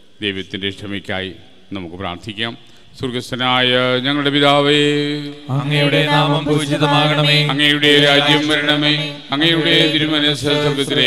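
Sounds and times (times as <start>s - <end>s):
man chanting a prayer: 0.2s - 11.0s.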